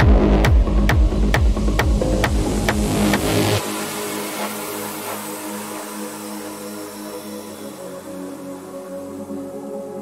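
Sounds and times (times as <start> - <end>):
synth drone chords: 0.0 - 10.0
hissing noise wash: 2.0 - 10.0.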